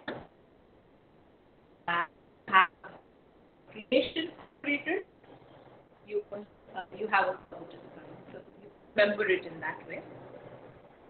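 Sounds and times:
woman's voice over video call: 1.9s - 3.1s, 3.7s - 5.1s, 6.0s - 10.6s.

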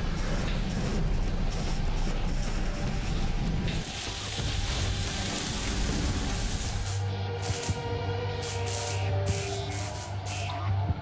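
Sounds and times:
faint music: 0.0s - 11.0s
loud steady hiss: 3.7s - 7.7s.

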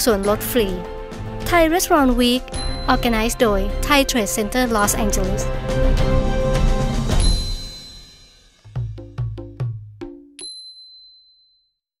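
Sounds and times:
bright chime ringing: 2.4s - 4.5s, 7.1s - 8.5s
low chord hit: 2.4s - 8.8s.

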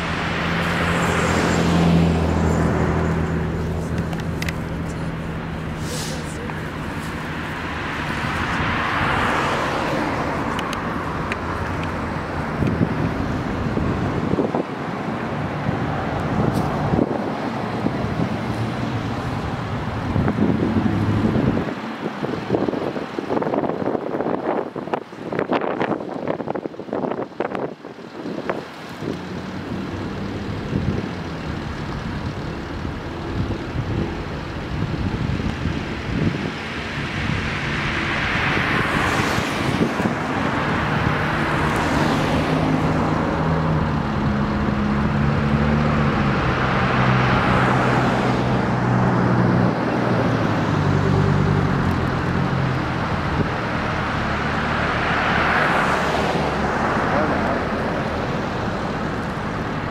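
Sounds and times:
cars driving past: 0.0s - 59.9s
engine hum: 0.0s - 59.9s
wind gusts on microphone: 0.0s - 59.9s.

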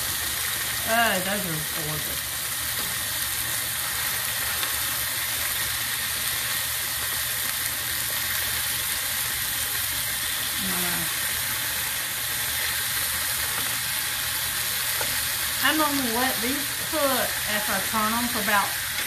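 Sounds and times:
patties sizzling in skillet: 0.0s - 19.0s.

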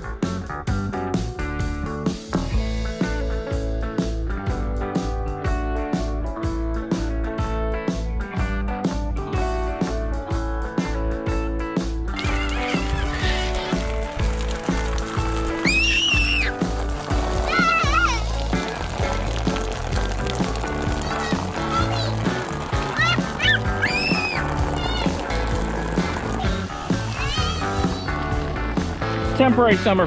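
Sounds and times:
background music: 0.0s - 30.0s
child squealing: 12.2s - 13.9s, 15.6s - 16.6s, 17.4s - 18.3s, 22.9s - 25.2s, 26.4s - 28.2s.

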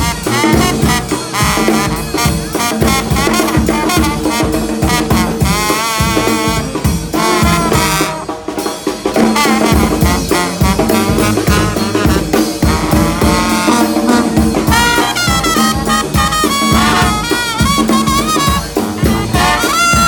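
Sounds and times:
bass drum beat: 0.0s - 8.2s, 9.2s - 20.0s
brass band playing: 0.0s - 20.0s
high trumpet line: 0.0s - 20.0s.

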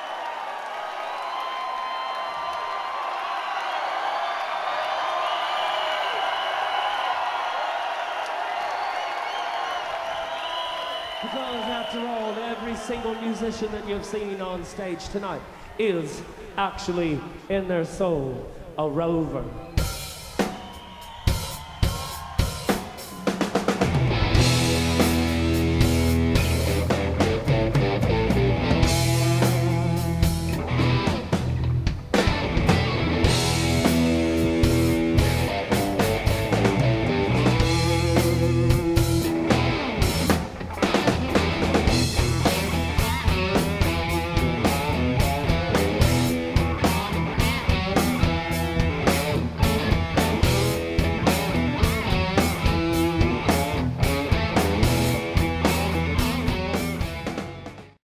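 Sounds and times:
rock band music: 19.6s - 58.0s.

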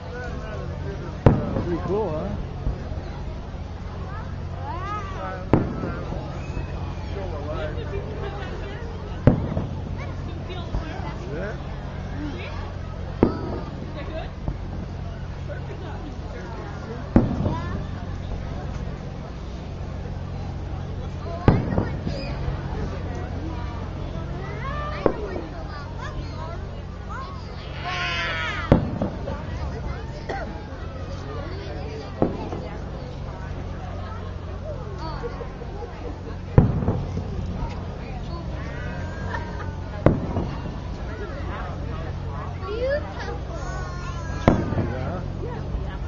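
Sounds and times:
firework crack: 0.0s - 46.0s
street crowd chatter: 0.0s - 46.0s
fireworks bangs: 0.6s - 34.7s, 36.4s - 42.6s, 44.3s - 45.8s.

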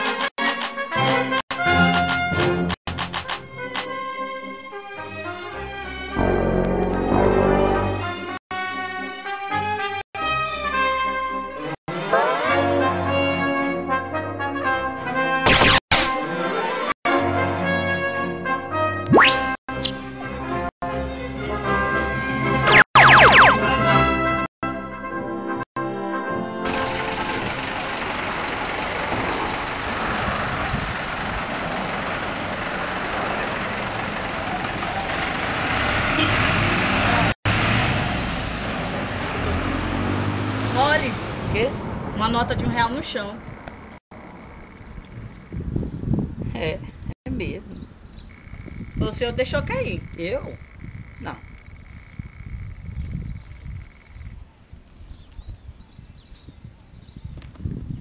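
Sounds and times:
bus engine rumble and hiss: 27.6s - 39.5s
small birds chirping: 44.2s - 46.2s, 46.9s - 57.7s.

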